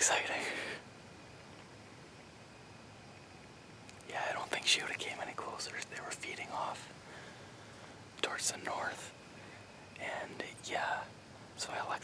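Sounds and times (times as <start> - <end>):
man whispering: 0.0 - 0.8, 4.0 - 7.0, 8.2 - 9.2, 10.0 - 12.0
faint steady hiss: 0.0 - 12.0.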